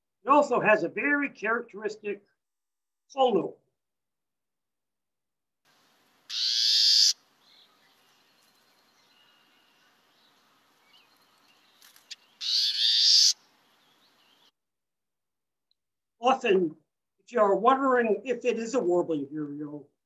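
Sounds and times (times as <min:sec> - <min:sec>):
faint field recording hiss: 0:05.7 - 0:14.5.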